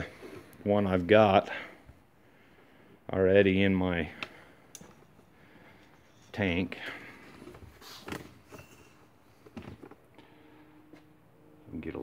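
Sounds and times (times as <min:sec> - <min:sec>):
faint steady hum: 0:00.0 - 0:12.0
soft handling knocks and rustles: 0:05.8 - 0:10.1.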